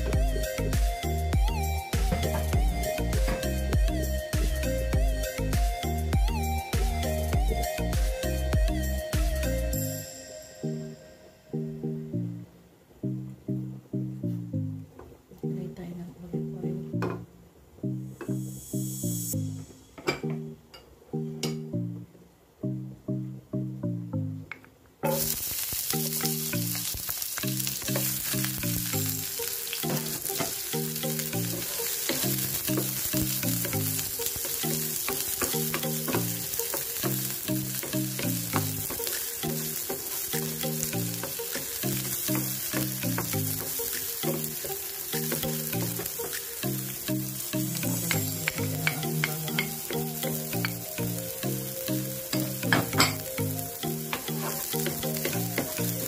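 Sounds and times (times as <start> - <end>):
background music: 0.0 - 56.0
onions sizzling in hot oil: 25.0 - 56.0
spatula scraping and tapping pan: 29.8 - 46.6, 54.0 - 55.8.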